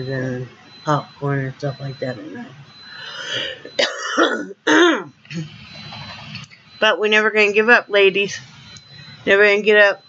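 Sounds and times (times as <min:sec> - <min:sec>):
woman coughing: 0:03.4 - 0:05.5
woman clearing her throat: 0:03.8 - 0:05.5.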